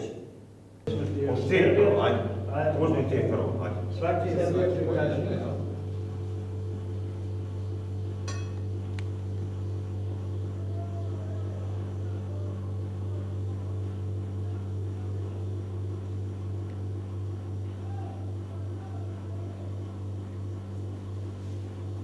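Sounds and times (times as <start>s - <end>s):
low electrical hum: 0.0s - 22.0s
metal spoon clinking on china plate: 8.3s - 8.6s.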